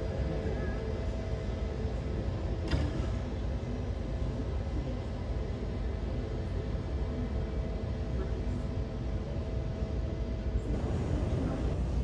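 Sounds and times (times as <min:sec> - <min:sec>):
faint steady hum: 0:00.0 - 0:12.0
low rumble of airport apron: 0:00.0 - 0:12.0.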